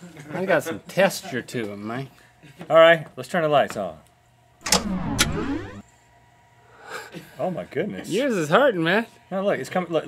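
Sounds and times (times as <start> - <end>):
sweeping rising and falling tones: 4.6 - 5.8.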